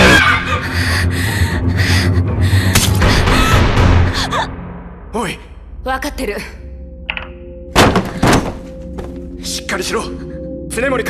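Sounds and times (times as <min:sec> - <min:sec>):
low droning score: 0:00.0 - 0:07.7.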